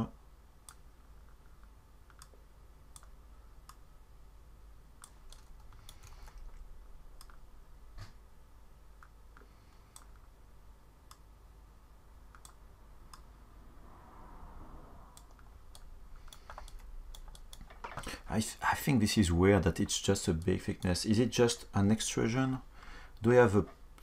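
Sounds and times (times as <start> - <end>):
low steady hum: 0.0 - 24.0
keyboard and mouse clicks: 0.6 - 3.8, 5.0 - 6.6, 7.2 - 7.4, 12.3 - 13.3, 15.2 - 18.1.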